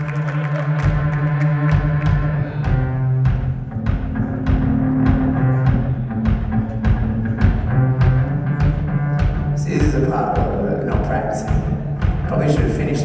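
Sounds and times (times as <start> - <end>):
percussive beat: 0.0 - 13.0.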